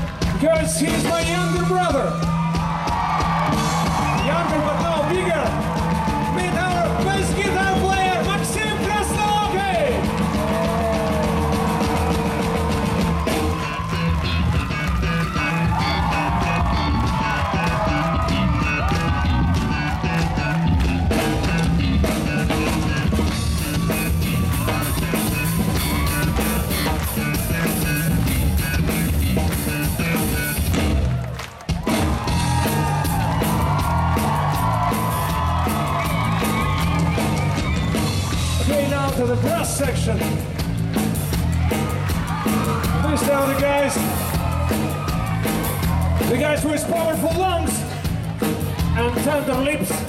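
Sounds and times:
live ska-rock band playing: 0:00.0 - 0:31.2, 0:31.8 - 0:50.0.

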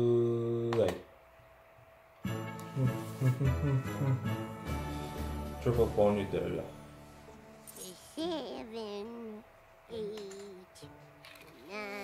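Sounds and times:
cartoon background music: 0:07.7 - 0:12.0
cartoon character voice: 0:07.8 - 0:10.8, 0:11.6 - 0:12.0.

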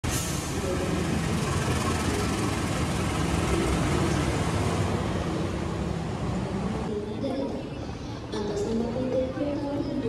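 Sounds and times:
locomotive engine running: 0:00.0 - 0:06.9.

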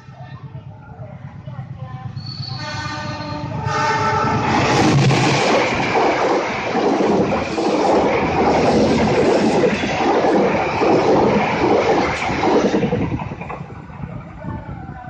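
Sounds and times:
train coaches rolling past: 0:00.0 - 0:15.0
wheel-on-rail noise: 0:03.2 - 0:15.0.

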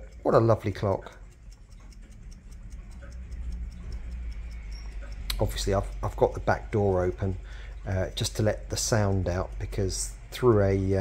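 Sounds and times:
clock ticking rapidly: 0:00.0 - 0:11.0
low steady hum: 0:00.0 - 0:11.0.

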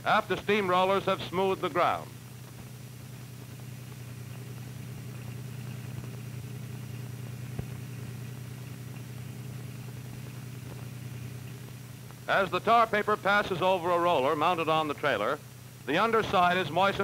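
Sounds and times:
low engine-like hum: 0:00.0 - 0:17.0.

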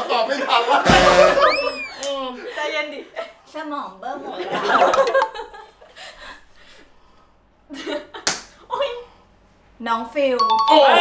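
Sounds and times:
hand slapping helmet: 0:08.2 - 0:08.6.

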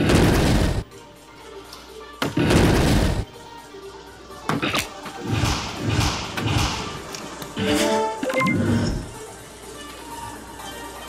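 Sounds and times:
background music: 0:00.0 - 0:11.0
electronic jingle: 0:07.6 - 0:09.1.

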